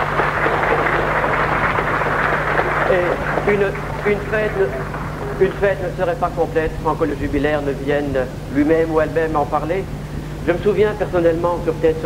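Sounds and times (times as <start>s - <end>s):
audience applauding: 0.0s - 6.7s.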